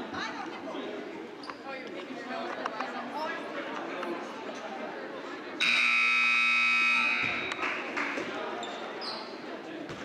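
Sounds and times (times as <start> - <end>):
scoreboard horn: 5.6 - 7.4.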